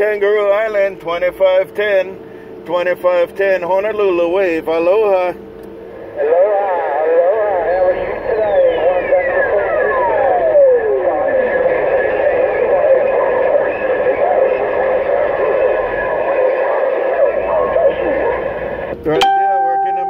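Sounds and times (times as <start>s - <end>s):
distorted radio voices: 0.0s - 19.3s
steady whistling tones: 7.4s - 18.8s.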